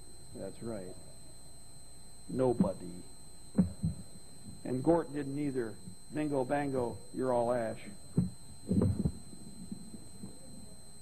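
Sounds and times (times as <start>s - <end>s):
steady background hum: 0.0s - 11.0s
dull low thumps: 3.5s - 4.6s, 8.0s - 10.4s.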